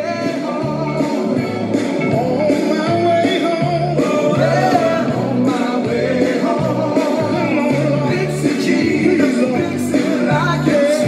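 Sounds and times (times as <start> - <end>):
recorded gospel song: 0.0 - 11.0.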